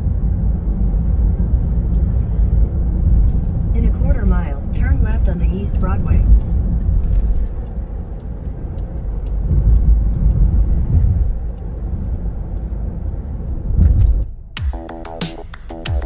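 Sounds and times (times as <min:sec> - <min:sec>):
car road rumble from inside: 0:00.0 - 0:14.6
music with held electronic tones: 0:14.6 - 0:16.0.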